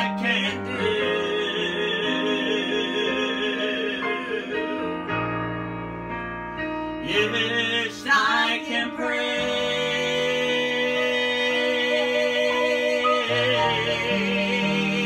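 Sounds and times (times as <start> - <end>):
man and woman singing gospel: 0.0 - 5.1, 7.0 - 15.0
piano accompaniment: 0.0 - 15.0.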